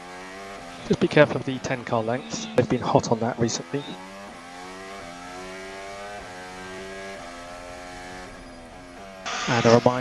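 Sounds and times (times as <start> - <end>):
racing car engine: 0.0 - 10.0.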